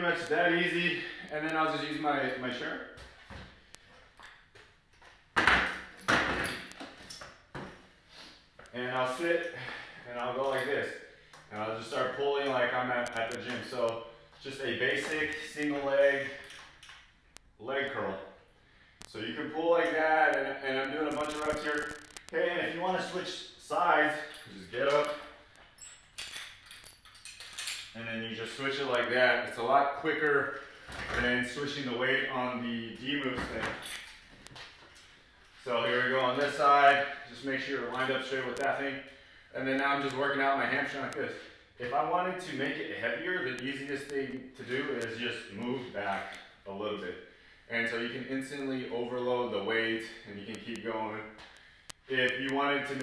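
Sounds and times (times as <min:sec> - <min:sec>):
metallic carabiner clinks: 0:24.2 - 0:28.0.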